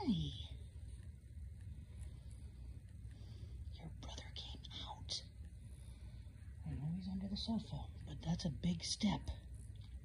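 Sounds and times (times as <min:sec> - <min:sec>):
soft whispering: 0:00.0 - 0:10.0.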